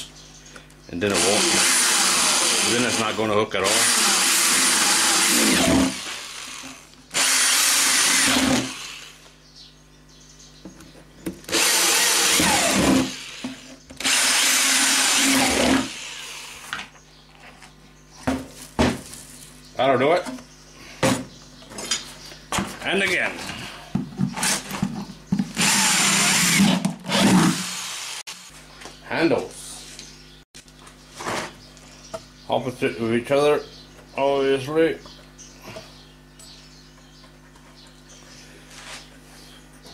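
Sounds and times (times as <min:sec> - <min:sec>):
electric drill boring through plastic: 0:01.1 - 0:09.2, 0:11.5 - 0:16.8, 0:25.5 - 0:28.5.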